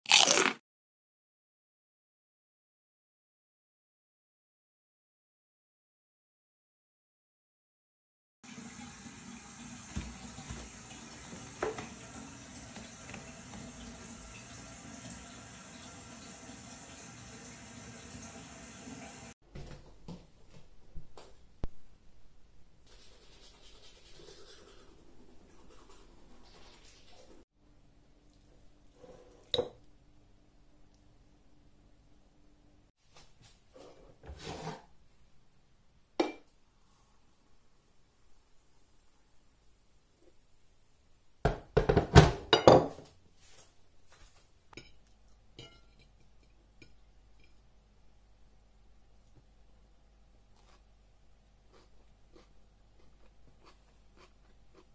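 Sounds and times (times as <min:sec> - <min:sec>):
toothbrush scrubbing teeth: 0:22.9 - 0:27.4
ceramic dishes clinking: 0:44.8 - 0:47.6.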